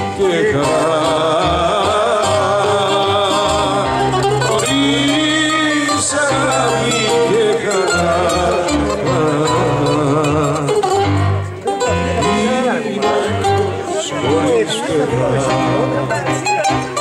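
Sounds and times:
man singing into a microphone: 0.0s - 16.4s
bass line: 0.0s - 17.0s
bouzouki melody: 0.0s - 17.0s
keyboard accompaniment: 0.0s - 17.0s.

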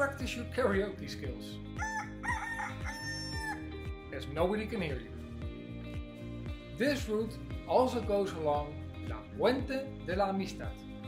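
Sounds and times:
song with steady beat: 1.7s - 11.0s.

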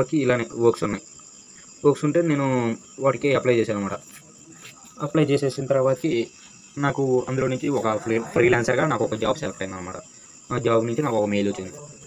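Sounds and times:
faint high-pitched whine: 0.0s - 12.0s
man speaking: 4.9s - 12.0s.

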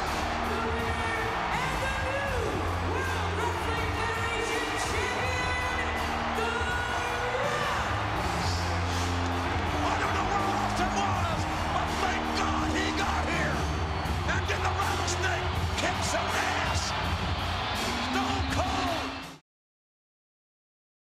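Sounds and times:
crowd cheering and shouting: 0.0s - 19.4s
entrance music through speakers: 0.0s - 19.4s.

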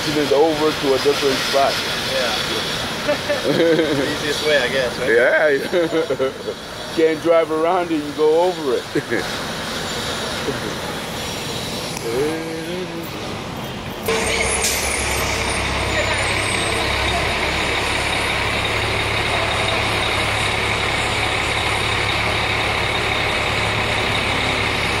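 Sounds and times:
diesel construction machinery running: 0.0s - 25.0s.

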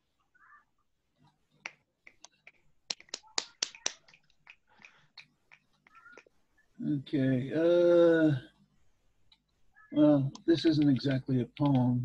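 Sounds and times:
people snapping fingers: 1.6s - 6.4s.

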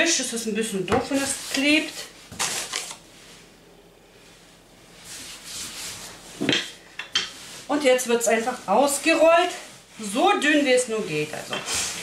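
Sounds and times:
hands brushing dough on table: 0.1s - 3.5s, 4.2s - 12.0s.

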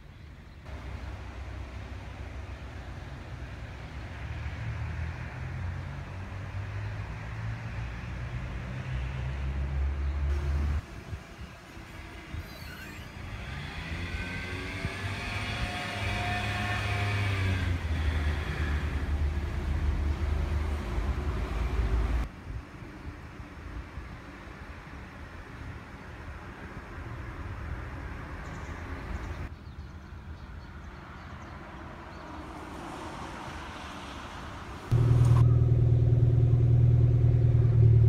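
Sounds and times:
motor vehicle passing: 13.2s - 22.2s
low outdoor rumble: 34.9s - 38.0s.

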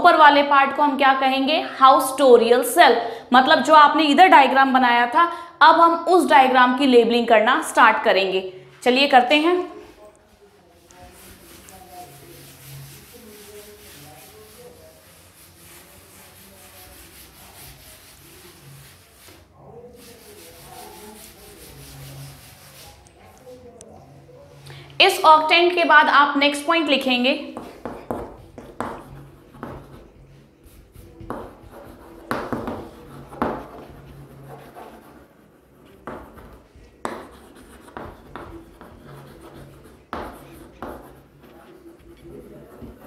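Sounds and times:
chalk scratching on blackboard: 9.7s - 23.6s, 27.5s - 43.0s
duster scraping blackboard: 10.9s - 23.1s.

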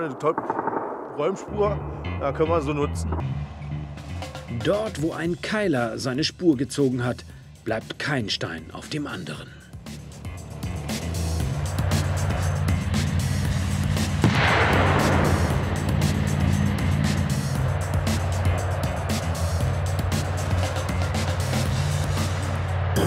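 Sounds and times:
background music with low notes: 1.3s - 23.0s.

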